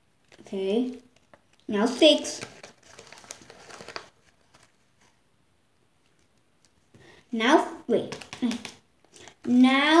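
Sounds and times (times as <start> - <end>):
paper packet crinkling: 2.3 - 4.8.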